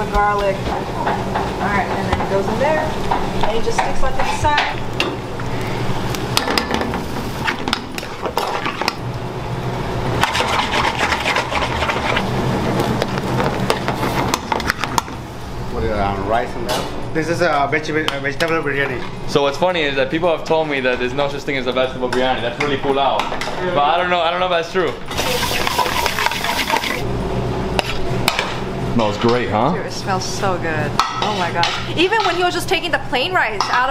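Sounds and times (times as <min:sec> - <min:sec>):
metal spoon scraping pans: 0:25.1 - 0:27.0.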